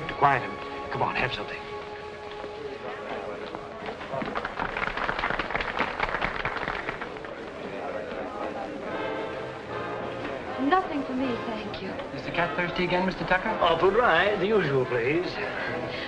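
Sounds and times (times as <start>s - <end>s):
crowd chatter: 0.0s - 16.0s.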